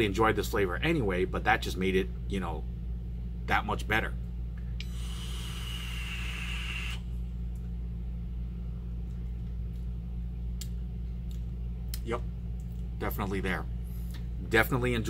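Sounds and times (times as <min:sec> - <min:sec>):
low electrical hum: 0:00.0 - 0:15.0
vape hiss: 0:04.8 - 0:07.0.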